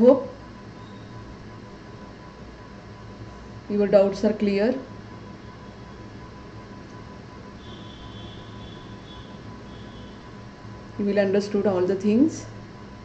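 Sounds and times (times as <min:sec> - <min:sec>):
background hum and hiss: 0:00.0 - 0:13.0
thin constant whine: 0:00.0 - 0:13.0.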